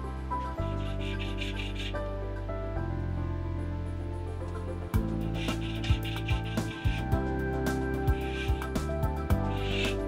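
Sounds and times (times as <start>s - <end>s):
background music with low bass: 0.0s - 10.0s
hand file rasping on metal: 0.7s - 2.0s, 5.2s - 10.0s.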